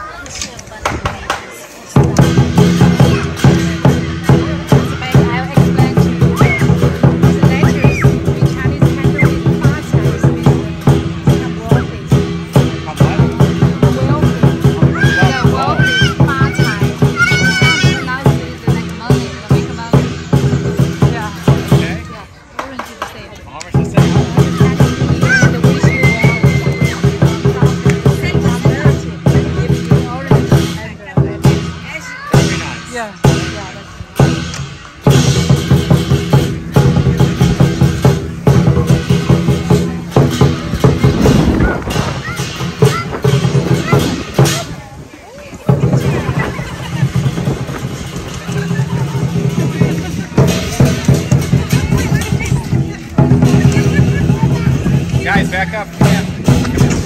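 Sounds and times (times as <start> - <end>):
drum beaten in rapid strokes: 0.8 - 57.0
clashing cymbals: 24.0 - 44.8.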